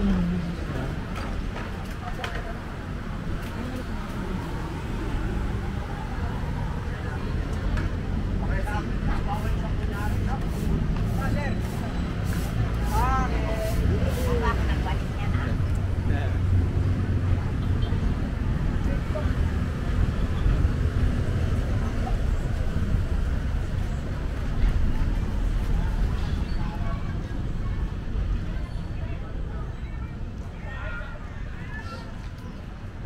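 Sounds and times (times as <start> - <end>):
people talking nearby: 0.0 - 33.0
road traffic rumble: 0.0 - 33.0.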